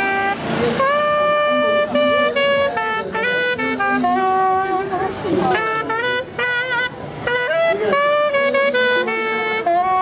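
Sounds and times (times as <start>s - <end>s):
solo saxophone melody: 0.0s - 10.0s.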